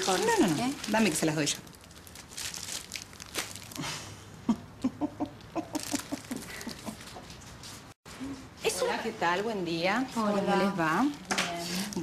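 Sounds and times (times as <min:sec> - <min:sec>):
cellophane rustling: 0:00.0 - 0:03.9, 0:05.7 - 0:07.9
woman chuckling: 0:03.8 - 0:07.2.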